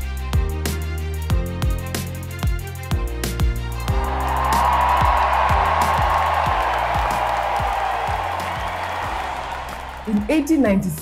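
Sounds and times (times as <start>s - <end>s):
background music with steady beat: 0.0s - 11.0s
large crowd cheering: 3.8s - 11.0s.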